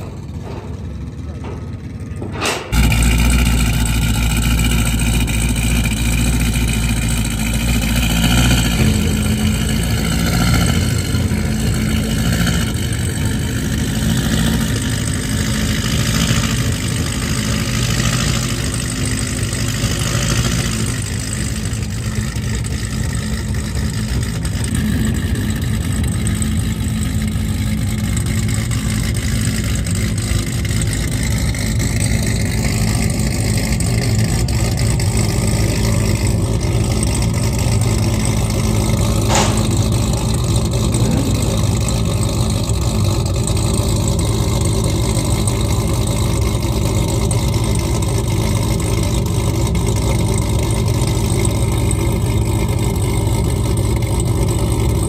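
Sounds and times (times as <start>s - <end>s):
car engine starting and idling: 0.0s - 55.0s.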